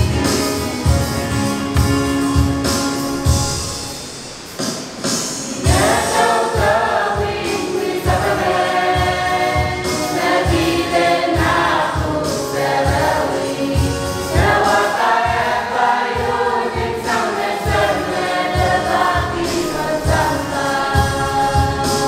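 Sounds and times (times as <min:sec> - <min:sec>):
young voices singing a hymn: 0:05.4 - 0:22.0
steady low beat: 0:12.9 - 0:22.0.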